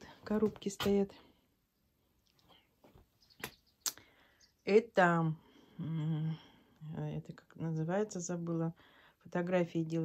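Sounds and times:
faint small sounds: 0:00.0 - 0:10.0.

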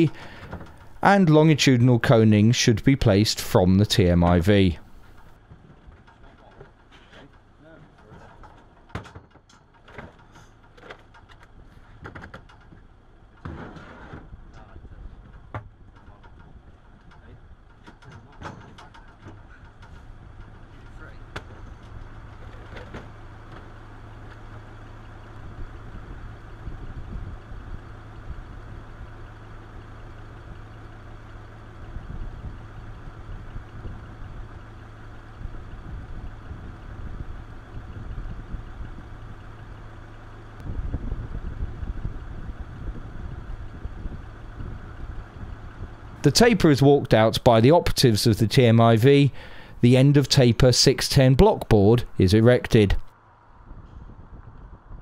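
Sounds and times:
truck engine running: 0:00.0 - 0:55.0.

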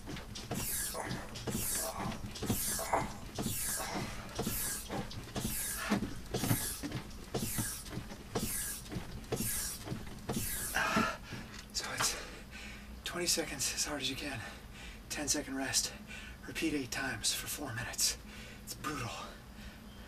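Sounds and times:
machine frame knocking: 0:00.0 - 0:11.6
forced breath hissing: 0:00.5 - 0:11.4.

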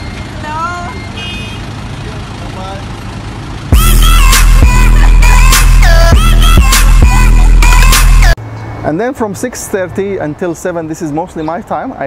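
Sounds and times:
voices calling: 0:00.0 - 0:07.7
bus engine idling: 0:00.0 - 0:09.2
electronic music with heavy beat: 0:03.7 - 0:08.4.

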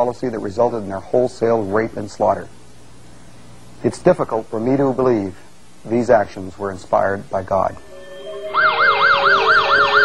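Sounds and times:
emergency siren yelping: 0:07.8 - 0:10.0.

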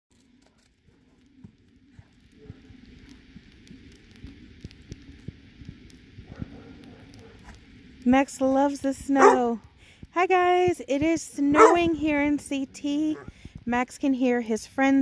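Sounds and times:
faint low hum: 0:00.2 - 0:15.0.

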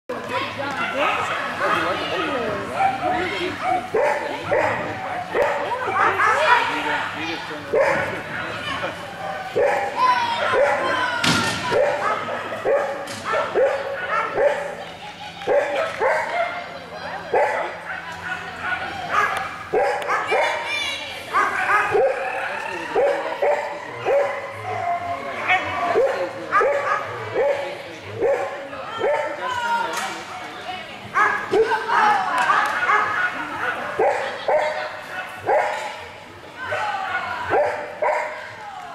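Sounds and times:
voices: 0:00.1 - 0:38.9.

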